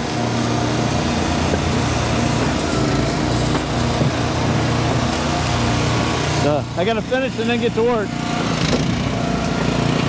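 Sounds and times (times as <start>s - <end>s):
small gas engine running: 0.0s - 10.0s.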